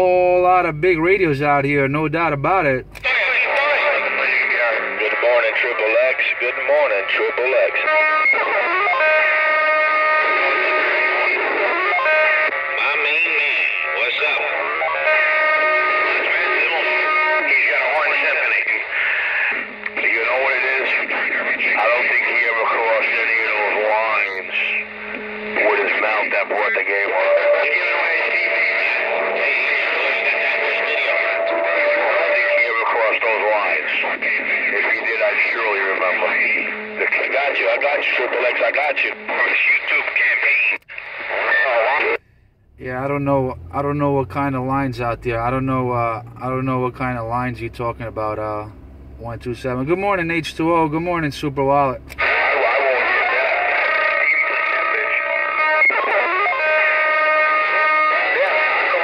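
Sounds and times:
distorted radio voices: 0:00.0 - 0:59.0
steady radio tones: 0:00.0 - 0:59.0.

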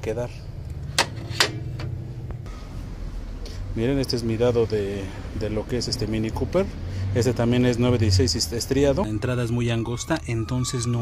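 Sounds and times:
steady low hum: 0:00.0 - 0:07.0.

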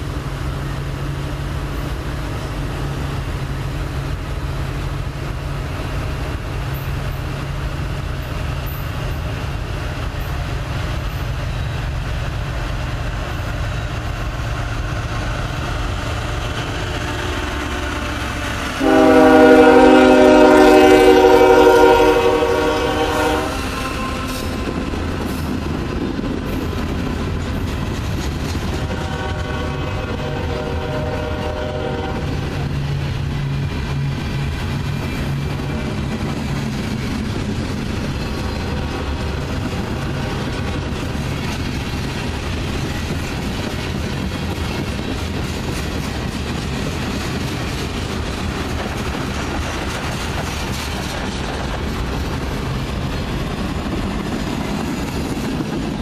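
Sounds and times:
diesel locomotive rumbling: 0:00.0 - 0:56.0
train horn blast: 0:16.6 - 0:24.7, 0:28.8 - 0:32.3.

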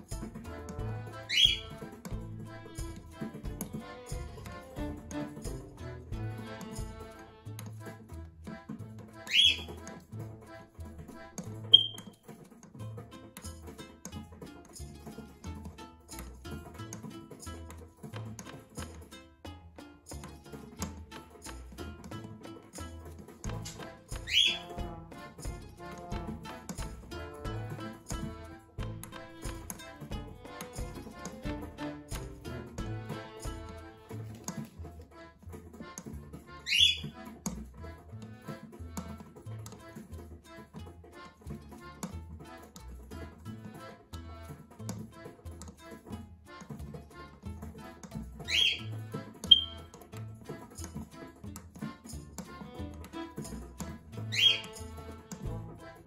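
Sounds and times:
background music: 0:00.0 - 0:56.0
cockatiel chirping: 0:01.3 - 0:01.8, 0:09.3 - 0:09.8, 0:11.8 - 0:12.2, 0:24.2 - 0:24.7, 0:36.6 - 0:37.1, 0:48.5 - 0:48.9, 0:49.5 - 0:49.8, 0:54.3 - 0:54.8
cockatiel whistle: 0:01.3 - 0:01.8, 0:09.3 - 0:09.8, 0:11.7 - 0:12.2, 0:24.2 - 0:24.7, 0:36.7 - 0:37.1, 0:48.5 - 0:48.9, 0:49.5 - 0:49.9, 0:54.3 - 0:54.8.

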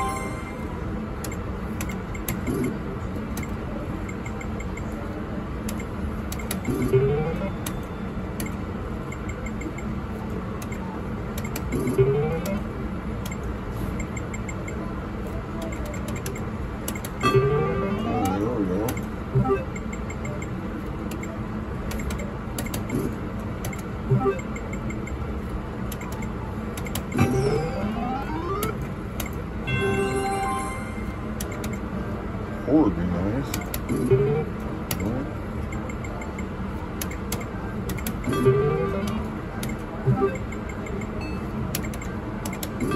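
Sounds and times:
cluster of electronic tones: 0:00.0 - 0:00.8, 0:17.2 - 0:18.6, 0:27.1 - 0:28.8, 0:29.7 - 0:31.8, 0:38.3 - 0:39.2, 0:40.1 - 0:40.6
casino background hum: 0:00.0 - 0:42.9.

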